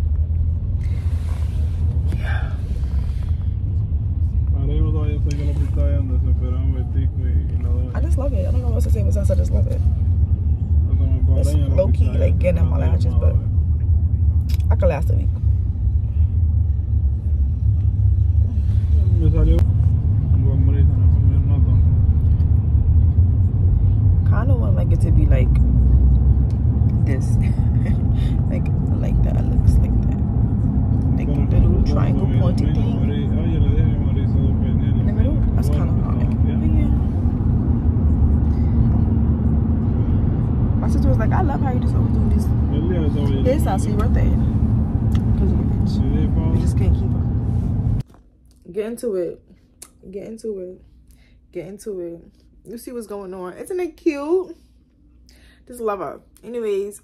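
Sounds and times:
car cabin rumble: 0.0 - 48.0.

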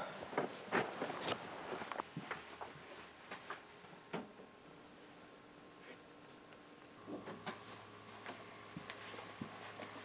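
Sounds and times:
soft footsteps on carpet: 0.4 - 3.7, 7.6 - 10.0.

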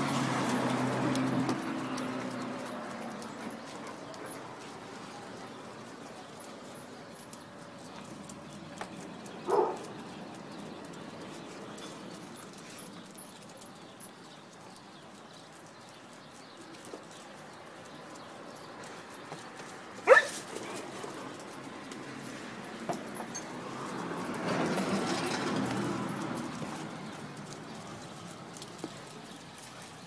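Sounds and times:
dog barking: 9.5 - 9.9, 20.0 - 20.4.

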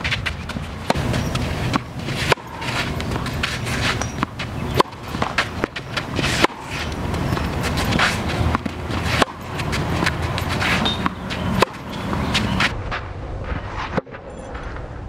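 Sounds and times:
shoes scuffing on court: 0.0 - 12.8
tennis racket hitting ball: 0.0 - 12.8.

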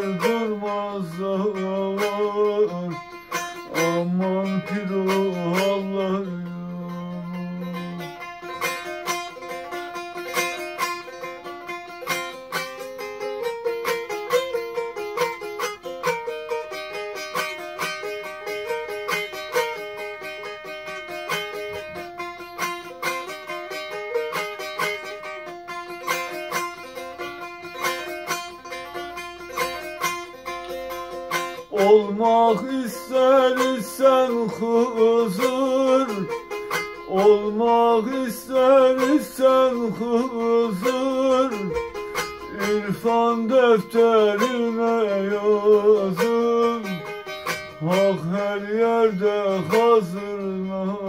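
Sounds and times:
fast picked lute melody: 0.0 - 51.0.

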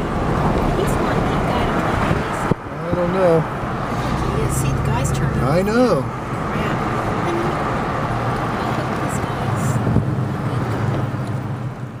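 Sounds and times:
car cabin road and engine drone: 0.0 - 12.0.

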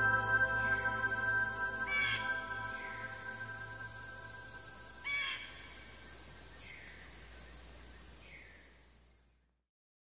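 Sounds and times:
high cricket-like chirring: 0.0 - 9.6.

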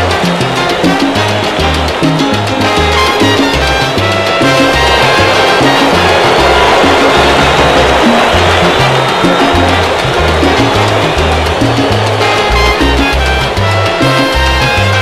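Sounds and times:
low bass line: 0.0 - 15.0
salsa band playing: 0.0 - 15.0.

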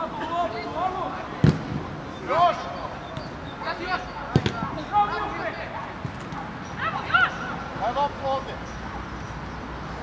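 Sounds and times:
players shouting calls: 0.0 - 8.7
football kick thump: 4.3 - 4.7.

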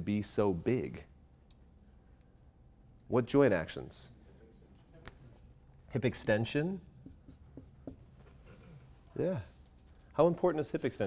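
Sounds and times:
marker writing on whiteboard: 6.4 - 9.0.

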